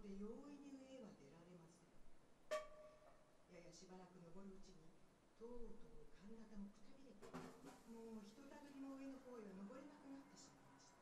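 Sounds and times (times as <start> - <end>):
woman reading aloud: 0.0 - 1.8, 3.5 - 7.2, 7.9 - 11.0.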